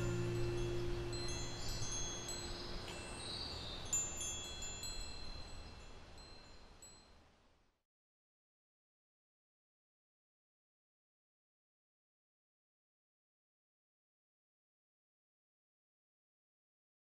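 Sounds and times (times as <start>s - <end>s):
metal wind chimes ringing: 0.0s - 7.2s.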